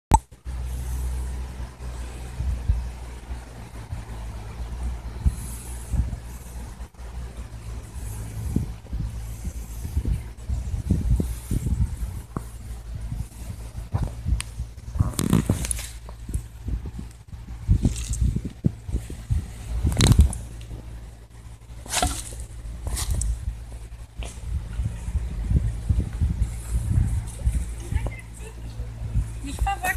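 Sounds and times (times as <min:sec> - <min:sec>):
scraping and rustling: 0:05.2 - 0:25.2
camera handling rumble: 0:08.1 - 0:20.9, 0:21.8 - 0:28.2
soft handling thumps: 0:21.7 - 0:25.0.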